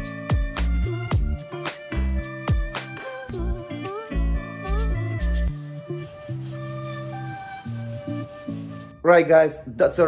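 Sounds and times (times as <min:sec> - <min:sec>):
background music with bass: 0:00.0 - 0:09.2
sanding sponge scratching panel: 0:05.9 - 0:08.9.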